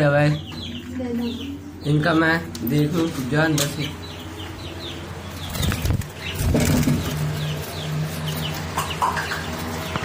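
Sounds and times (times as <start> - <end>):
parrots chirping: 0.3 - 10.0
wings flapping and rustling: 5.4 - 10.0.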